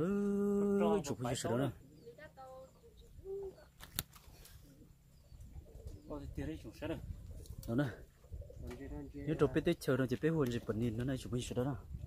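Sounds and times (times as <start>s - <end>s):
bird cooing: 1.8s - 6.2s.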